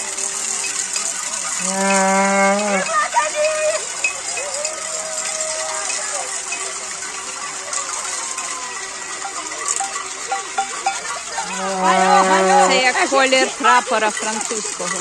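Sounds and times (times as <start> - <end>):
crowd shouting: 1.3 - 14.1
horn noisemaker blaring: 8.7 - 13.2.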